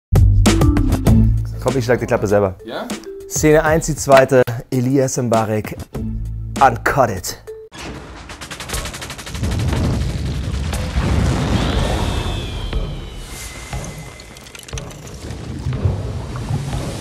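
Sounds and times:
heavy booming rumble: 7.8s - 13.8s
fast rattle of clicks: 8.0s - 10.8s
high whistle gliding downward: 11.4s - 14.5s.

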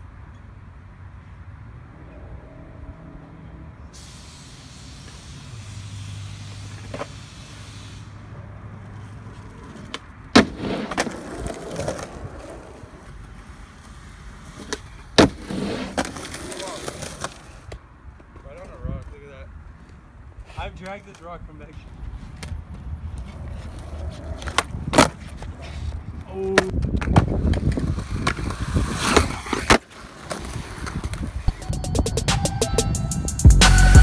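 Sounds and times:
skateboard wheels rolling: 4.0s - 32.1s
skateboard cracks: 8.9s - 17.8s, 23.2s - 25.6s, 26.4s - 31.4s.

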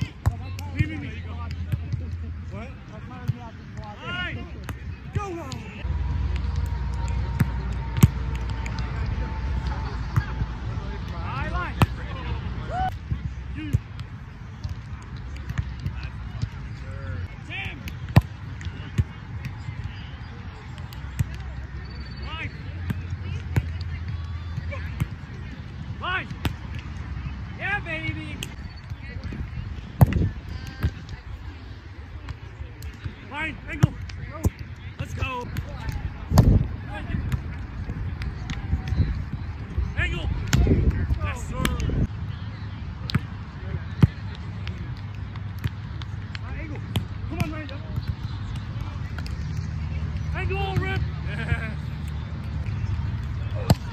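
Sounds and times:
players calling out: 0.0s - 53.9s.

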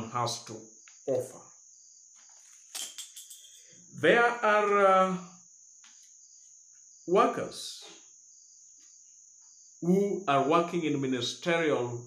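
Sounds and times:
man saying uh: 9.8s - 10.9s.

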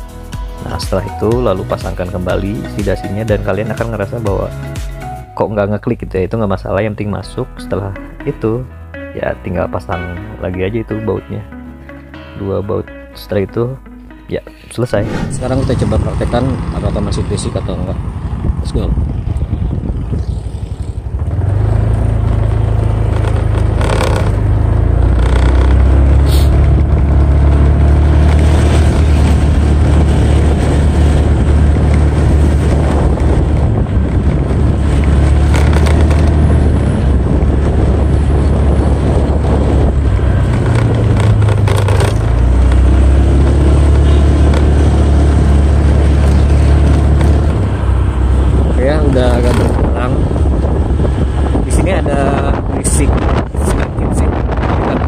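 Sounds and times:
road and wind noise: 0.0s - 55.0s
scooter engine humming: 15.0s - 51.9s.

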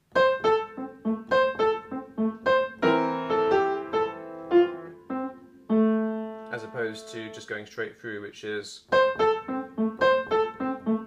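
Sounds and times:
upright piano playing: 0.1s - 7.6s, 8.9s - 11.0s.

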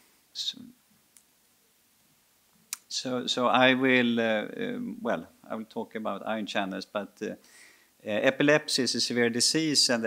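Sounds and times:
faint click: 1.1s - 1.3s, 2.7s - 2.9s.

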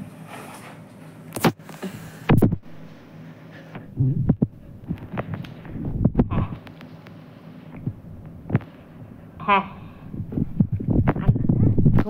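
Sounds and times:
steady low hum: 0.0s - 12.0s
soft low thumps: 2.3s - 3.0s, 3.8s - 6.6s, 7.7s - 8.6s, 9.8s - 12.0s.

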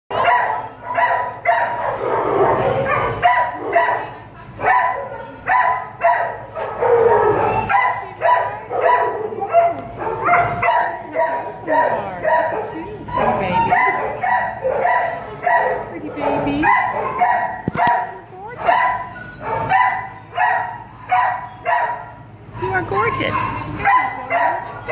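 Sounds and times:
dogs barking with echo: 0.1s - 22.2s, 23.6s - 24.9s.

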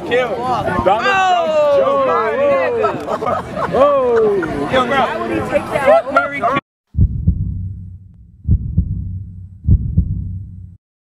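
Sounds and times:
heartbeat double thumps: 6.9s - 10.8s
low hum: 7.0s - 10.8s.

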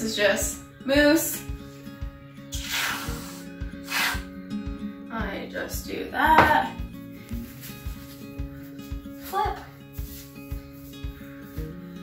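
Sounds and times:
acoustic folk music: 0.0s - 12.0s
aerosol can hissing: 2.5s - 4.3s.

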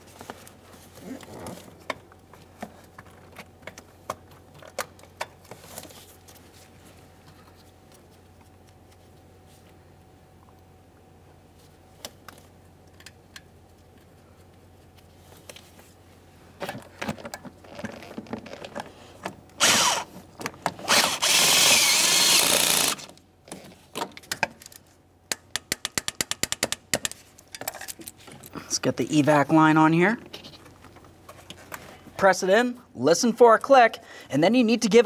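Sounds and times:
power tool spinning a socket: 19.6s - 20.1s, 20.8s - 23.1s.

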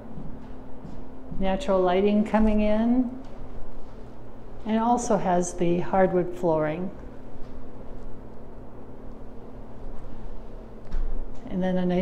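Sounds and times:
low rumble with faint hum: 0.0s - 12.0s.

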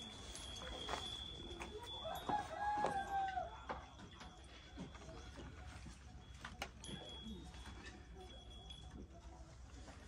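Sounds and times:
rooster crowing: 2.0s - 3.6s.

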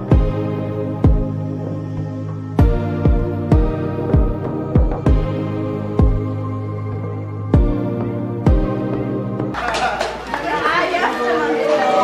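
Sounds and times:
crowd chatter: 9.6s - 12.0s.

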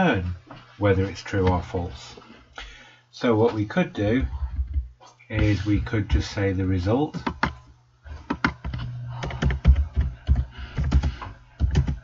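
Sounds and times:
low steady hum: 0.0s - 12.0s
keyboard typing: 8.2s - 12.0s.

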